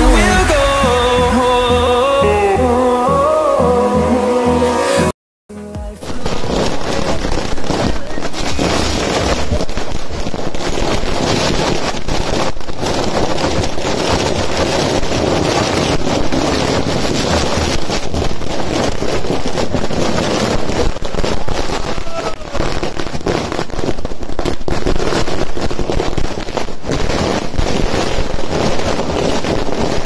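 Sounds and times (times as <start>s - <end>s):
firecrackers crackling: 0.0s - 2.5s, 5.6s - 30.0s.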